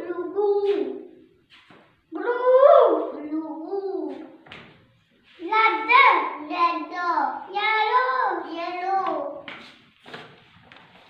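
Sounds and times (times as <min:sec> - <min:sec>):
child singing in a high voice: 0:00.0 - 0:01.0, 0:02.1 - 0:04.4, 0:05.4 - 0:09.5.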